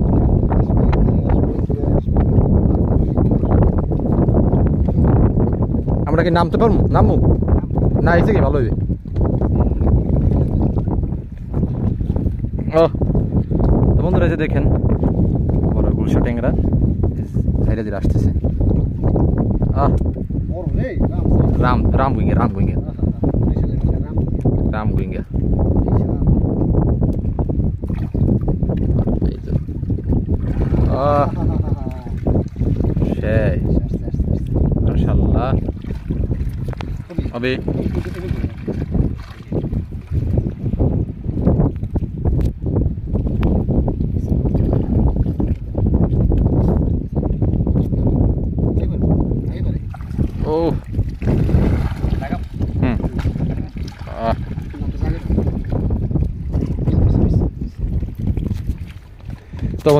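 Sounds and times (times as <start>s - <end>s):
water sloshing and splashing: 0.0s - 13.8s, 16.6s - 22.7s, 27.0s - 47.9s, 49.8s - 59.9s
wind rumbling on microphone: 0.0s - 59.9s.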